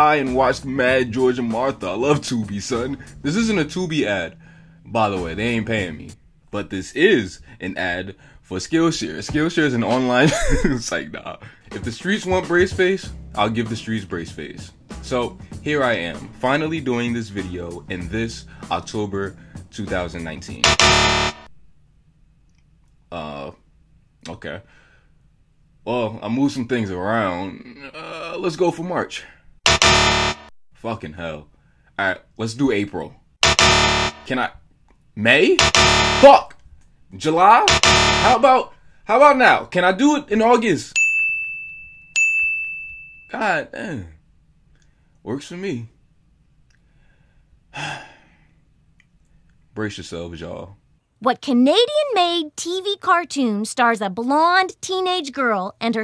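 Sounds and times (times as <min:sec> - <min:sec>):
man sighing: 0:47.7 - 0:48.4.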